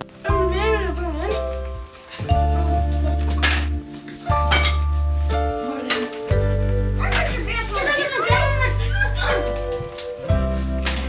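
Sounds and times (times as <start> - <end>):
background music: 0.0 - 11.0
children chattering: 0.0 - 11.0.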